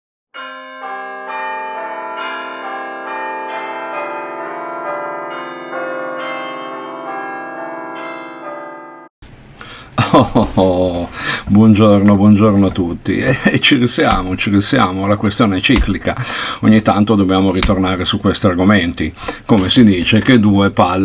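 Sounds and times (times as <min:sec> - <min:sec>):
bell chimes: 0:00.4 - 0:09.1.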